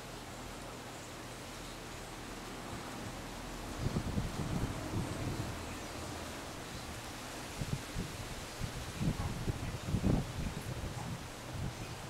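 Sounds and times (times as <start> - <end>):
wind rustling palm fronds: 0.0 - 12.0
wind buffeting microphone: 3.6 - 12.0.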